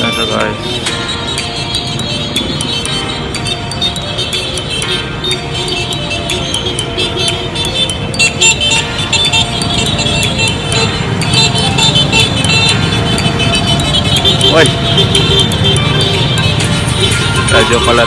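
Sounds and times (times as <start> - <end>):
motorcycle and van engines: 0.0 - 18.0
music with singing: 0.0 - 18.0.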